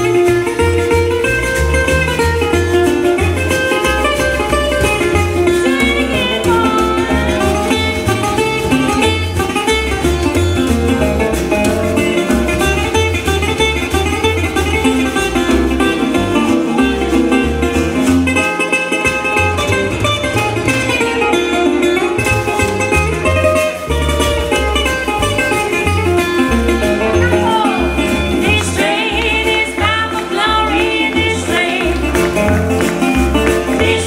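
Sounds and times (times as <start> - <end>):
low bass line: 0.0 - 34.0
resonator guitar playing blues: 0.0 - 34.0.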